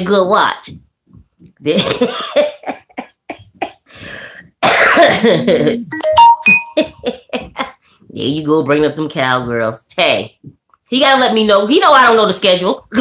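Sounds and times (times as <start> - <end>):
woman laughing hard: 1.9 - 3.9
woman coughing: 4.6 - 5.8
short electronic tones: 5.9 - 6.9.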